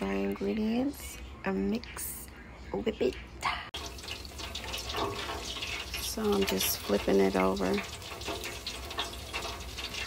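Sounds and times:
food deep-frying in oil: 3.8s - 10.0s.

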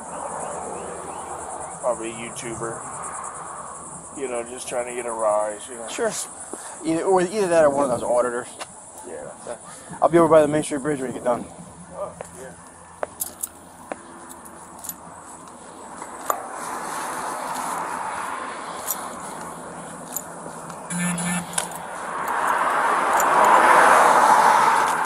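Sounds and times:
road traffic passing: 0.0s - 25.0s
light clicks and jingles: 12.2s - 16.3s, 18.7s - 20.9s, 21.7s - 23.6s.

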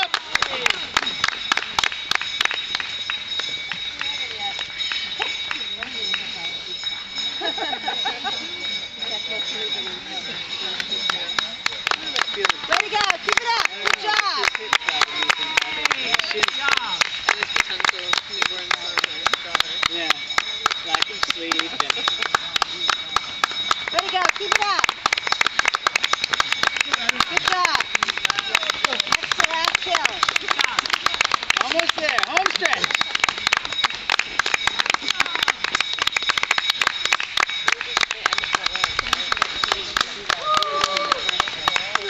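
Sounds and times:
spectators clapping: 0.0s - 42.0s
voices calling out: 0.0s - 42.0s.

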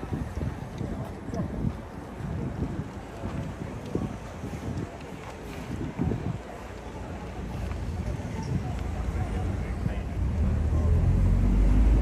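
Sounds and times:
coach engine rumble: 0.0s - 12.0s
wind buffeting microphone: 0.0s - 12.0s.

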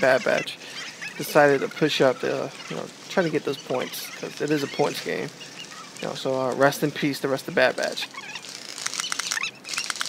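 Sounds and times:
faint chirps: 0.0s - 10.0s
rustling of dry leaves: 0.0s - 10.0s
sharp clicks: 7.6s - 10.0s.

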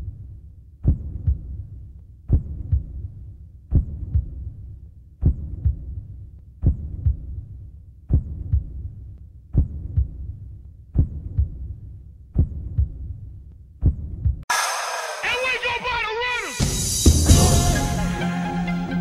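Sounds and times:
heartbeat thumps: 0.8s - 1.7s, 2.3s - 3.1s, 3.7s - 4.6s, 5.2s - 7.5s, 8.1s - 14.4s
song with singing: 14.5s - 19.0s.

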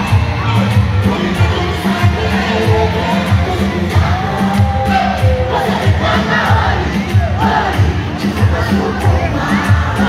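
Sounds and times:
crowd shouting and cheering: 0.0s - 10.0s
loud music with bass beat: 0.0s - 10.0s.

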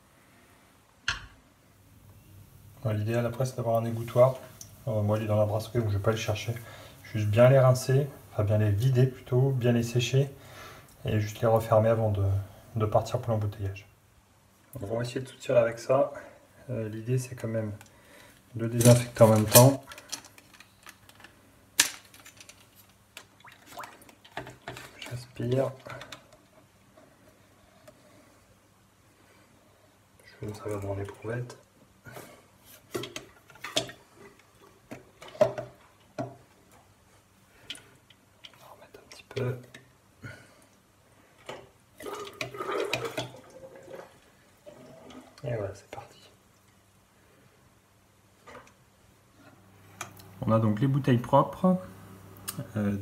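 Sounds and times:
liquid gurgling through tubing: 42.0s - 45.5s.

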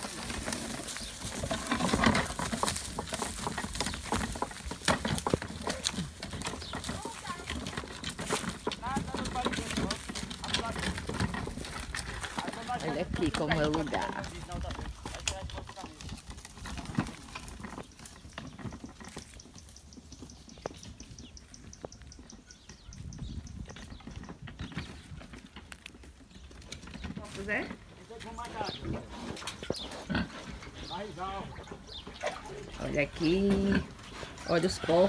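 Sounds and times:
footsteps through dry leaves: 0.0s - 7.5s
pigs grunting: 0.0s - 17.8s, 27.6s - 35.0s.

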